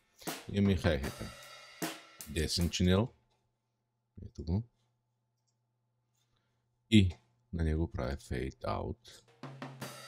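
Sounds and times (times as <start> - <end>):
person speaking: 2.3 - 3.2.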